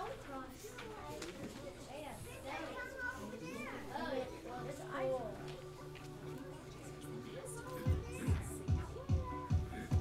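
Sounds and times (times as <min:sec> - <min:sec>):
children talking quietly: 0:00.0 - 0:10.0
music: 0:03.8 - 0:10.0.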